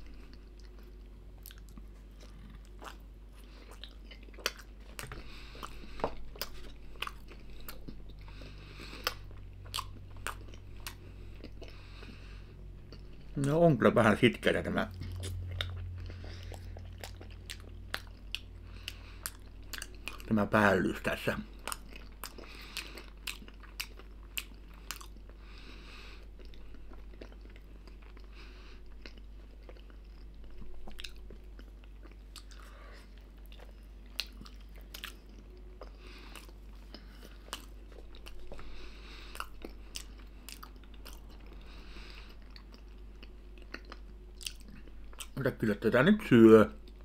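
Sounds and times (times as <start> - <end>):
man chewing with wet smacks: 0.0 - 13.6, 14.3 - 46.2, 46.8 - 47.0.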